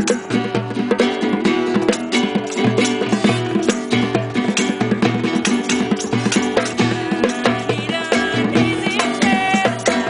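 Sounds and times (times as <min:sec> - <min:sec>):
acoustic guitar strumming: 0:00.0 - 0:10.0
hand drum tapping: 0:00.0 - 0:10.0.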